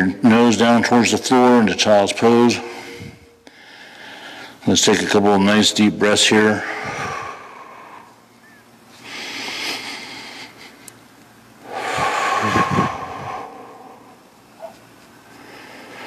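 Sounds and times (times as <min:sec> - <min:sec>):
man breathing deeply: 0:02.5 - 0:04.6, 0:06.4 - 0:10.9, 0:11.6 - 0:16.0.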